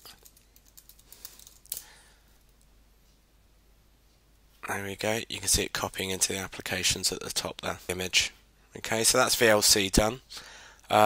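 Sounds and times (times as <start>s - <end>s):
typing on computer keyboard: 0.0s - 1.8s.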